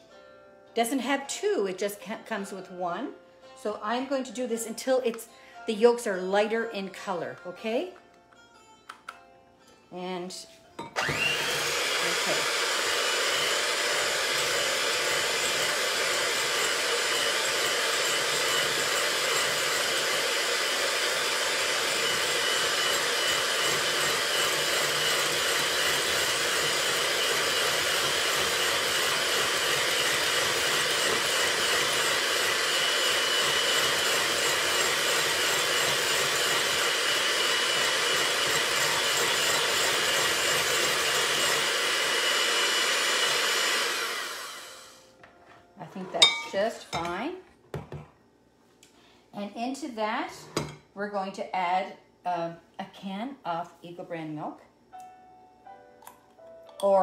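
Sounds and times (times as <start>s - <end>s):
electric hand mixer whirring: 11.0s - 45.1s.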